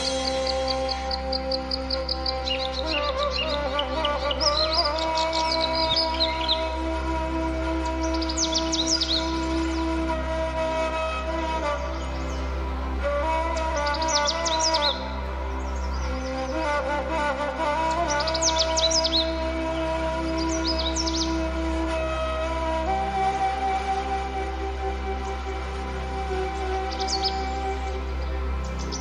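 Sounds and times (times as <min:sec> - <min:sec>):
high bird chirps: 0:00.0 - 0:06.7, 0:08.0 - 0:09.8
flute melody: 0:00.0 - 0:29.0
low drone: 0:00.0 - 0:29.0.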